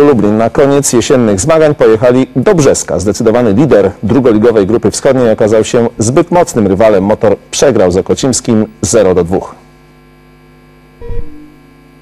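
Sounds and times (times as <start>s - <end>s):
mains hum: 0.0s - 12.0s
short tone: 11.0s - 12.0s.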